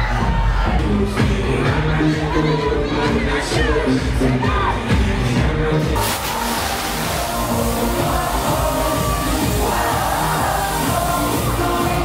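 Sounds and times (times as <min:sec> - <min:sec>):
electronic dance music: 0:00.0 - 0:12.0
loud even hiss: 0:06.0 - 0:12.0.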